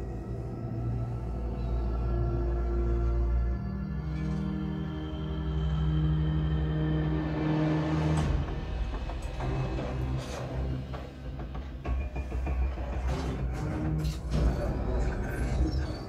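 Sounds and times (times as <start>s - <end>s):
film soundtrack over speakers: 0.0s - 16.0s.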